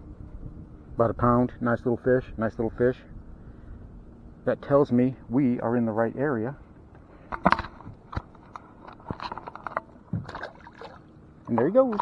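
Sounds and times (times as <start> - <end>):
water sloshing: 7.2 - 12.0.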